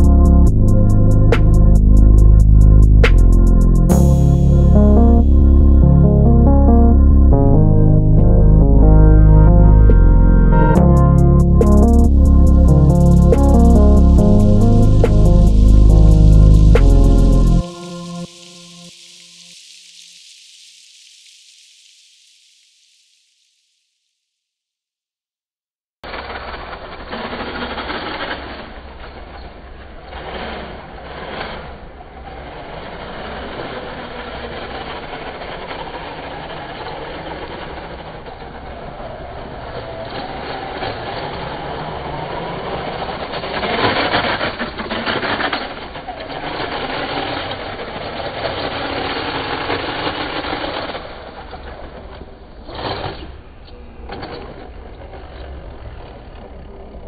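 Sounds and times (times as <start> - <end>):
toy car motor whine: 26.1 - 51.9.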